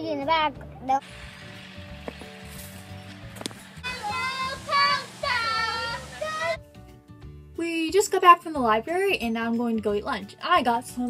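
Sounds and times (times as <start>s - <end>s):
background music with held notes: 0.0s - 11.0s
child shouting: 3.8s - 6.6s.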